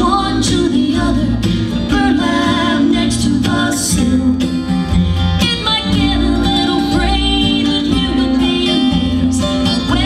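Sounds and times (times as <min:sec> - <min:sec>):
a cappella vocal harmony: 0:00.0 - 0:04.8, 0:05.4 - 0:10.0.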